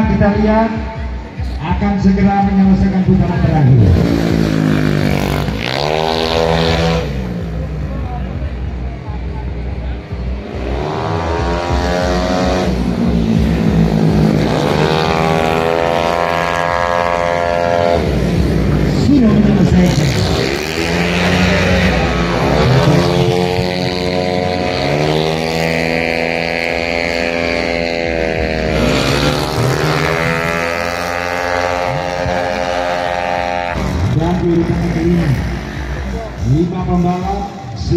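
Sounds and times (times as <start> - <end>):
scooters passing at full throttle: 3.6 - 37.7.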